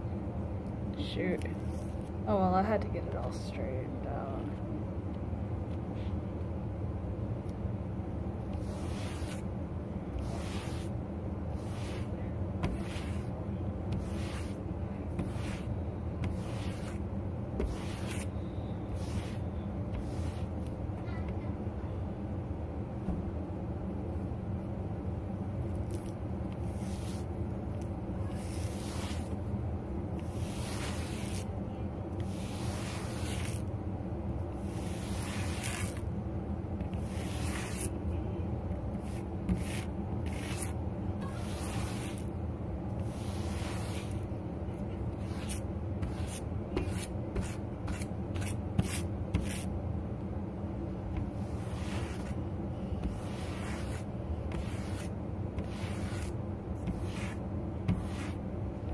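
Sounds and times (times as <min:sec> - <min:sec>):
steady low hum: 0:00.0 - 0:58.9
hand brush stroking faux fur: 0:08.4 - 0:09.5, 0:10.2 - 0:20.7, 0:25.7 - 0:27.3, 0:28.2 - 0:29.4, 0:30.2 - 0:31.6, 0:32.2 - 0:33.7, 0:34.6 - 0:36.0, 0:36.8 - 0:38.0, 0:38.9 - 0:42.4, 0:43.0 - 0:49.7, 0:51.2 - 0:58.4.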